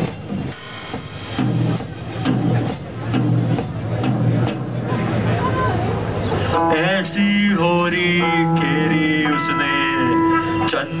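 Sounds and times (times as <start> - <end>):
electric guitars ringing chords: 6.6 - 11.0.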